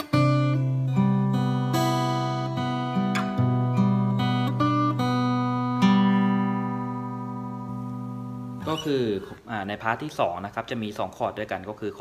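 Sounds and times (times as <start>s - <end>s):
fingerstyle acoustic guitar: 0.0s - 9.4s.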